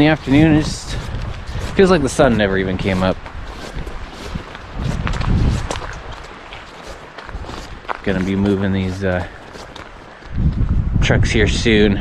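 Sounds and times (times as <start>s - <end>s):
footsteps on wet grass: 0.0s - 10.9s.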